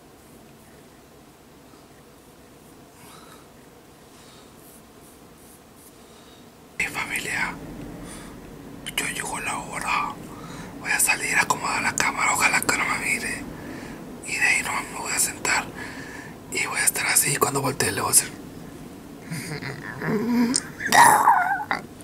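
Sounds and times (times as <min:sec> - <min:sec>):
man whispering: 0:06.8 - 0:07.6, 0:08.8 - 0:13.5, 0:14.2 - 0:15.8, 0:16.5 - 0:18.4.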